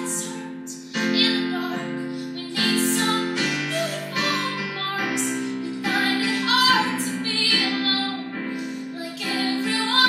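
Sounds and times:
digital piano chords: 0.0 - 10.0
woman singing: 0.0 - 10.0.

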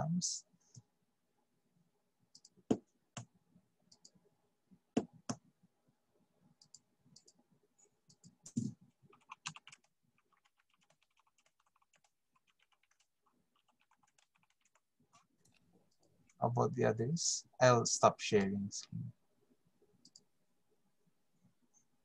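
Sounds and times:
computer keyboard typing: 8.1 - 14.8.

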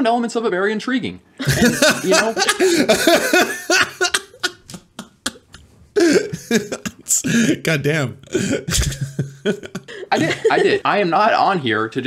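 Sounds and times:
man laughing hard: 1.4 - 7.5, 8.3 - 10.8.

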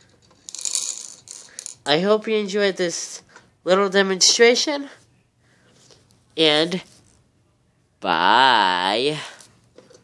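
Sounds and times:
plastic beads rattling in toy: 0.1 - 1.9.

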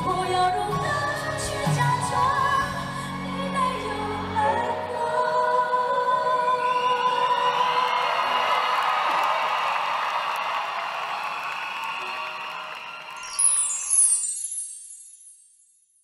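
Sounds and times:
live pop band: 0.0 - 8.0
audience cheering and applauding: 7.2 - 14.1.

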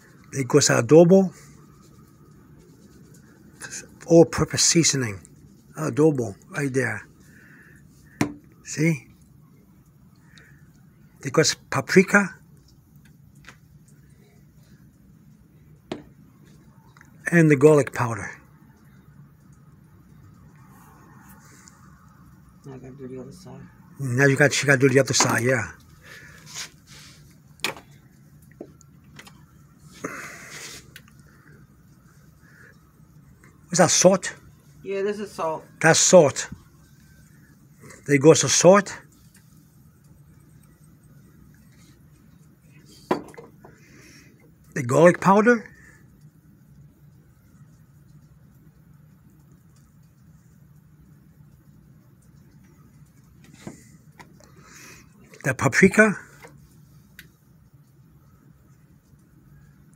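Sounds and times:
faint low hum: 0.0 - 59.9
wet handling of raw meat: 24.5 - 33.7
short rustle: 26.2 - 27.4.

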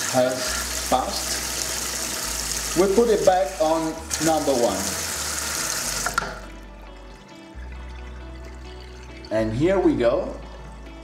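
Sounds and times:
water rushing through softener: 0.0 - 7.2
background music: 0.0 - 11.0.

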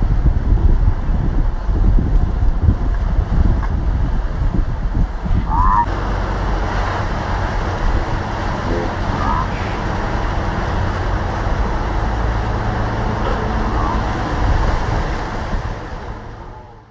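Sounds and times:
outboard motor running: 0.0 - 16.9
wake churning: 1.6 - 16.5.

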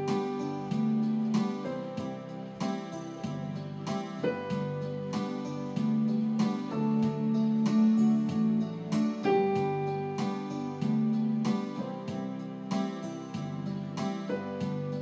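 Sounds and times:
electronic keyboard playing: 0.0 - 15.0.

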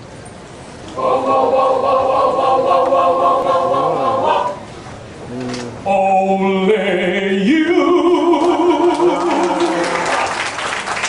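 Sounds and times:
choir singing a cappella: 0.9 - 4.8, 6.2 - 9.9.

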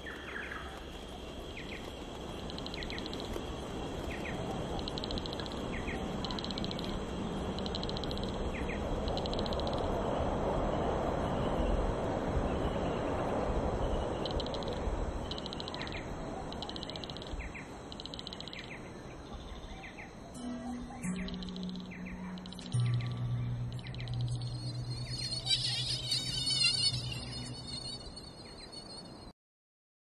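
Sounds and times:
insect chirps: 0.0 - 29.3
small bird-like chirps: 1.6 - 3.4, 14.1 - 29.3
warbling high chirping: 4.0 - 9.9, 20.3 - 29.3
low sustained music notes: 19.4 - 28.7.

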